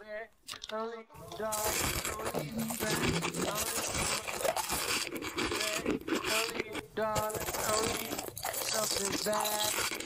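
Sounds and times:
person chewing and crunching candy: 1.3s - 10.0s.

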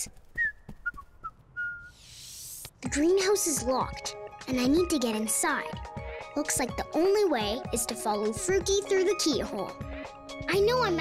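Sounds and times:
person whistling: 0.4s - 2.1s.

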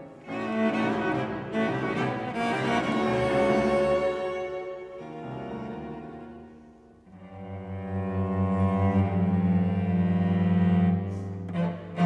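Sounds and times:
violin and viola playing: 0.0s - 12.0s.

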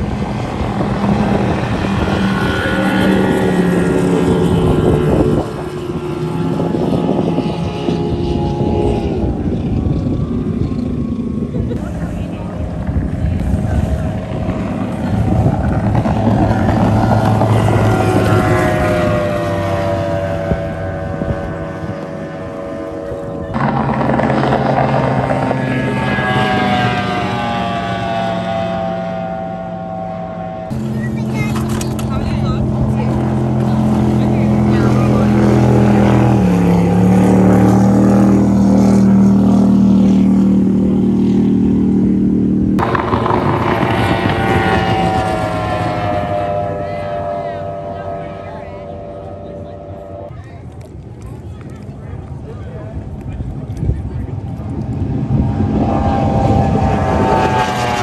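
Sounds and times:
race boat engines passing: 0.0s - 58.0s.

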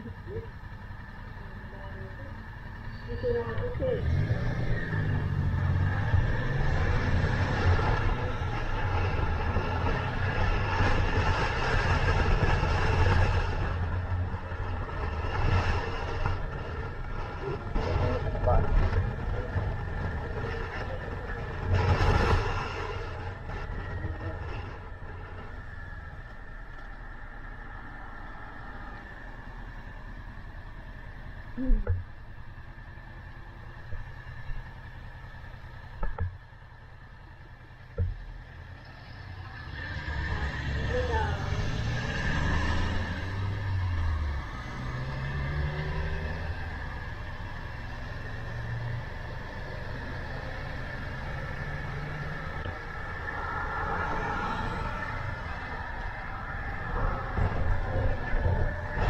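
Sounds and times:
motorcycle engine: 0.0s - 27.8s, 29.6s - 59.0s
wind noise: 52.7s - 59.0s.

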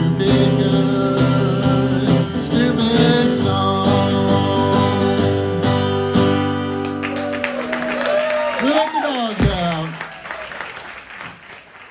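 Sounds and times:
audience applauding and cheering: 6.3s - 11.9s.

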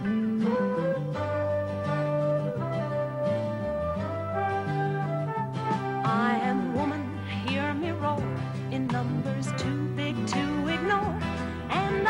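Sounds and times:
band playing pop instrumental: 4.4s - 12.0s.

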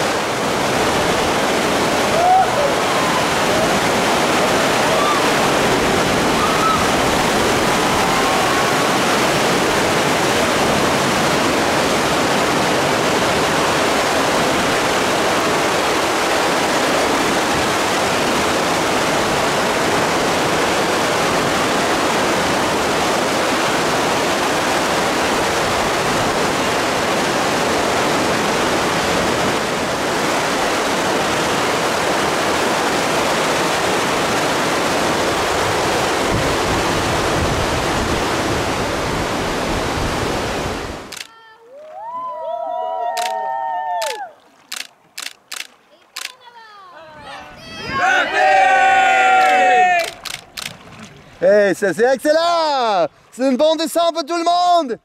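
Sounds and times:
whitewater rapids rushing: 0.0s - 45.4s, 47.0s - 54.9s.

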